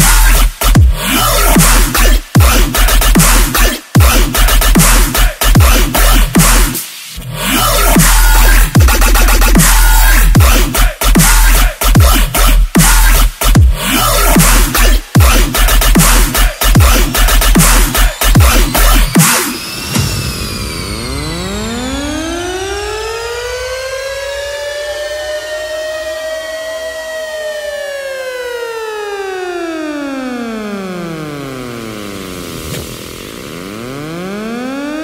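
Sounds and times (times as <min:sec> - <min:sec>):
loud dubstep music: 0:00.0 - 0:20.1, 0:31.0 - 0:35.0
air-raid siren wailing: 0:19.9 - 0:35.0.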